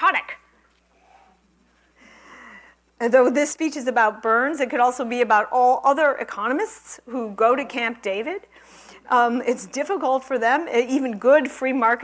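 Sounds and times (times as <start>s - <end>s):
person breathing: 0.9s - 2.9s, 8.5s - 9.1s.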